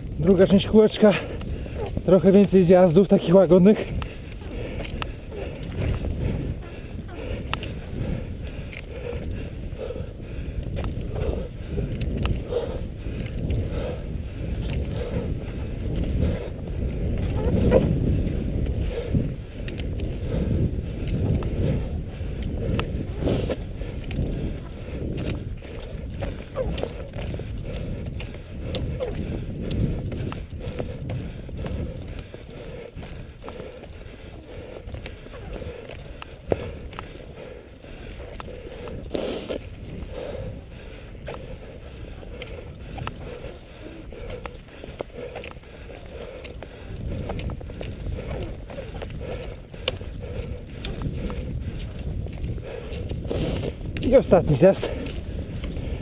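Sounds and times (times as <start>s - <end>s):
low microphone rumble: 0.0s - 56.0s
skis swishing over snow: 39.1s - 40.4s, 53.3s - 55.2s.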